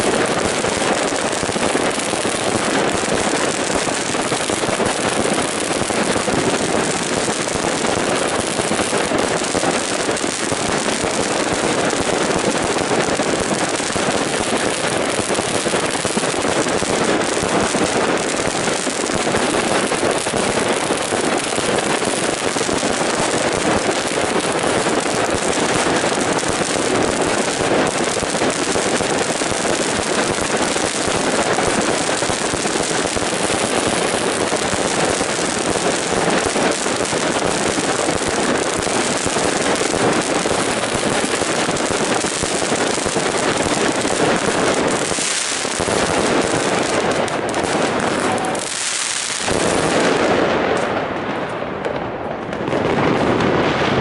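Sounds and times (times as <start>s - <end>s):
fireworks launching and bursting: 0.0s - 54.0s.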